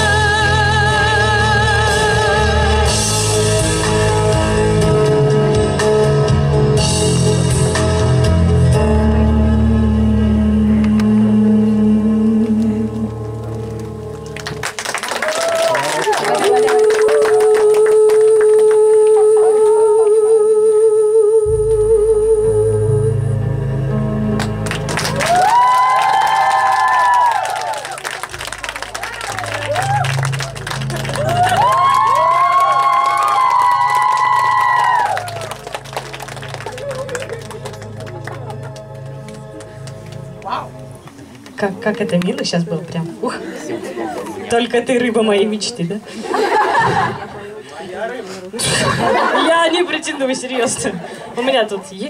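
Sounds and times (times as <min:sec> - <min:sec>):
bass-heavy backing track: 0:00.0 - 0:14.7, 0:21.4 - 0:25.9, 0:27.6 - 0:43.0
audience applause: 0:13.3 - 0:19.2, 0:24.4 - 0:40.0.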